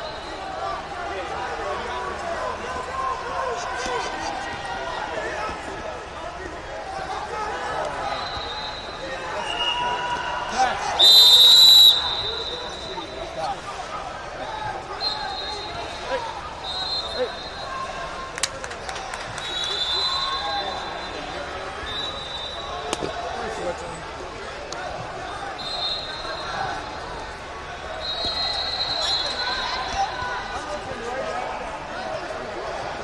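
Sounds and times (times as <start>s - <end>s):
murmur of voices in a hall: 0.0s - 33.0s
faint distant whistles: 8.0s - 10.4s, 11.0s - 13.4s, 14.9s - 18.0s, 19.3s - 23.2s, 25.3s - 27.2s, 27.9s - 30.6s
referee's whistle: 8.0s - 13.4s, 14.9s - 18.0s, 19.4s - 23.1s, 25.3s - 27.1s, 27.8s - 30.6s.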